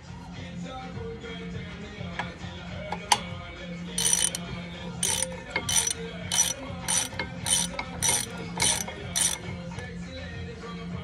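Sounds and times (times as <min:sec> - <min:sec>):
ratchet wrench clicking: 0:04.0 - 0:09.5.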